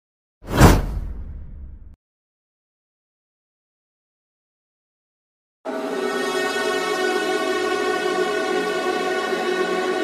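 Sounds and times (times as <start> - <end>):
whoosh: 0.4 - 2.0.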